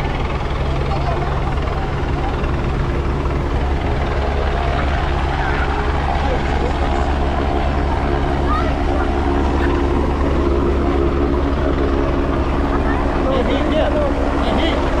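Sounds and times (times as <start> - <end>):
crowd chatter: 0.0 - 15.0
helicopter flying overhead: 0.0 - 15.0.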